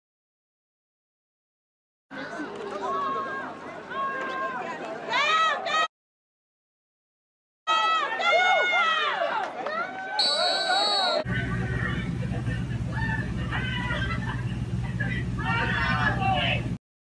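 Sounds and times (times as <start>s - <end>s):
people shouting excitedly: 7.7s - 11.3s, 15.4s - 16.7s
shrill whistle blast: 10.2s - 11.3s
low steady hum: 11.2s - 16.8s.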